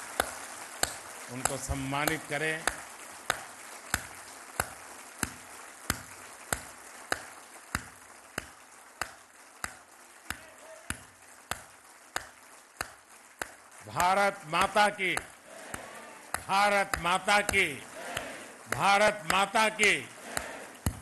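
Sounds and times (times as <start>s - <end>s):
audience clapping in rhythm: 0.0s - 21.0s
scattered clapping: 0.0s - 21.0s.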